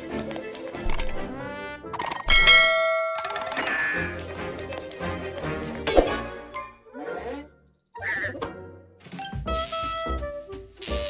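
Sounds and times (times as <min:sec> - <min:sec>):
orchestral cartoon music: 0:00.0 - 0:11.0
sharp metallic ding: 0:02.3 - 0:04.1.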